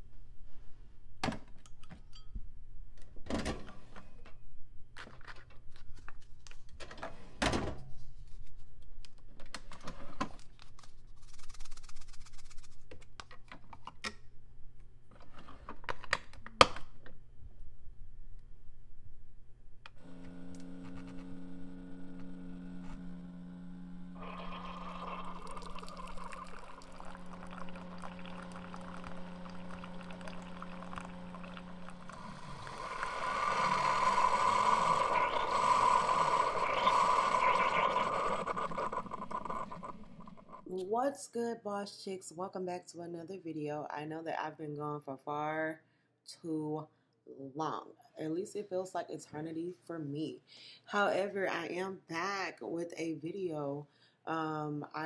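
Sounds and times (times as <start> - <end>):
coffee maker humming: 20.0 - 40.7
coffee pouring into glass mug: 24.2 - 39.9.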